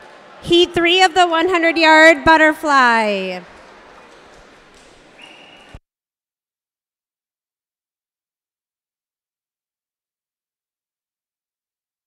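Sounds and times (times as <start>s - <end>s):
referee's whistle: 5.2s - 5.8s.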